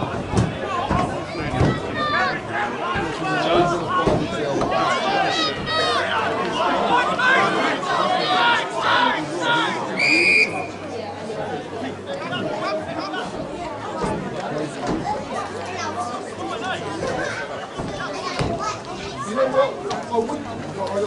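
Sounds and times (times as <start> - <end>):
spectators chatting and calling out: 0.0 - 21.0
referee's whistle: 10.0 - 10.8.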